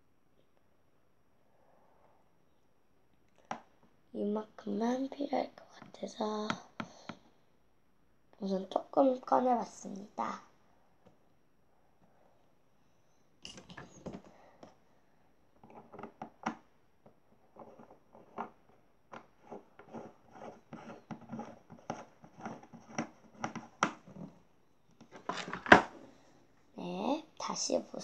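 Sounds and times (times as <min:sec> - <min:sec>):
plastic jar clicks and scrapes: 0:17.4 - 0:24.4, 0:25.0 - 0:25.9.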